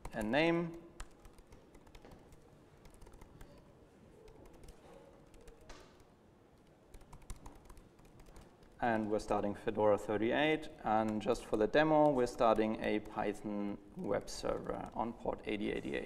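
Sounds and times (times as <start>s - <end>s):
laptop keyboard typing: 0.0s - 9.6s, 10.8s - 16.0s.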